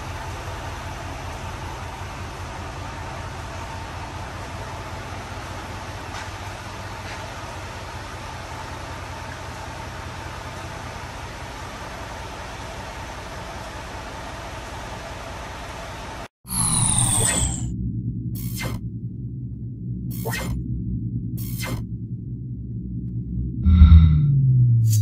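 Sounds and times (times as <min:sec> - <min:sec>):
truck engine idling: 0:00.0 - 0:16.3
low drone: 0:16.5 - 0:25.0
whooshing sound effect: 0:21.4 - 0:21.8.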